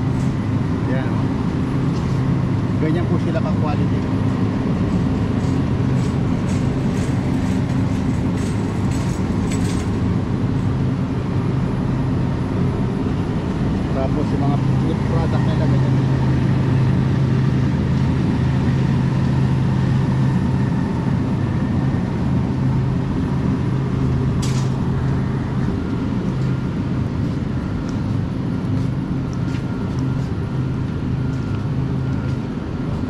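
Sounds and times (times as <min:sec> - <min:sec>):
refrigerator and ventilation hum: 0:00.0 - 0:33.0.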